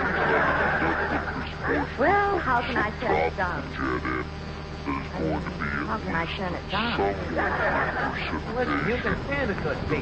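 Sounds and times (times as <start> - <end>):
low recording hum: 0.0 - 10.0
person speaking on old radio: 4.9 - 10.0.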